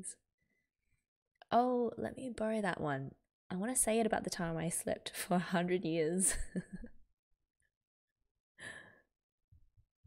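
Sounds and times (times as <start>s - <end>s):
woman's breathy laugh: 6.3s - 6.9s.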